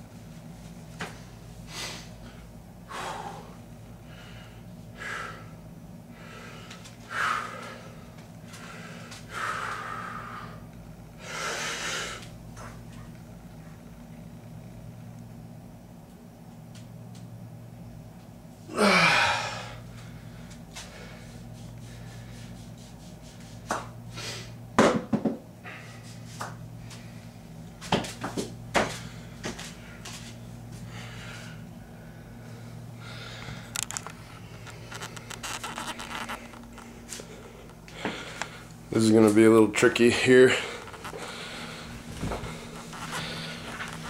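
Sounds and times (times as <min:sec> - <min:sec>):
steady low hum: 0:00.0 - 0:44.0
man breathing hard: 0:01.6 - 0:12.3, 0:18.7 - 0:22.6, 0:24.1 - 0:24.6, 0:25.6 - 0:26.2, 0:28.9 - 0:34.8, 0:36.9 - 0:38.8, 0:40.3 - 0:44.0.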